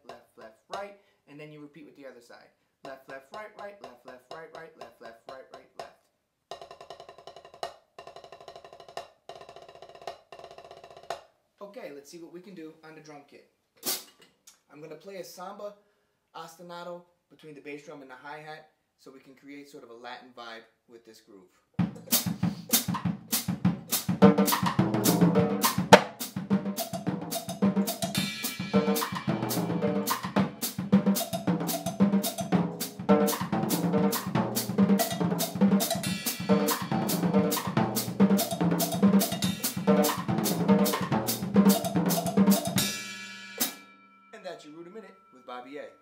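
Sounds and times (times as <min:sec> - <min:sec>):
bass drum: 0:21.8 - 0:43.8
foot hi-hat: 0:21.8 - 0:43.8
snare and tom rolls: 0:21.8 - 0:43.8
drum kit samba groove: 0:21.8 - 0:44.0.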